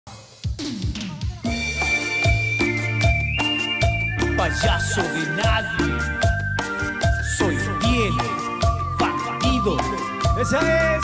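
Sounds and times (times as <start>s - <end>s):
band playing: 1.0s - 11.0s
bass guitar line: 1.5s - 11.0s.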